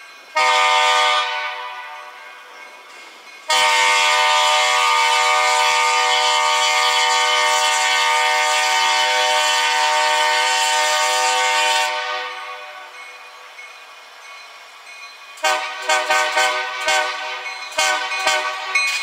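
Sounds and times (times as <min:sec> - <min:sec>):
locomotive air horn blasts: 0:00.4 - 0:02.1, 0:03.5 - 0:12.9, 0:15.4 - 0:18.8.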